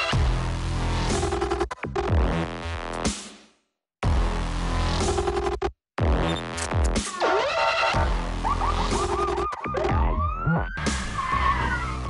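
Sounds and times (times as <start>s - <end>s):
electronic beat: 7.9s - 10.4s
car skidding: 10.8s - 12.0s.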